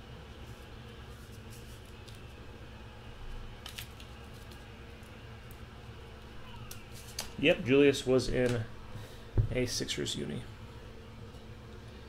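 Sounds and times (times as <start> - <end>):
low room hum: 0.0 - 12.0
cards clicking and rustling: 1.2 - 2.4, 3.6 - 5.6, 6.6 - 7.4.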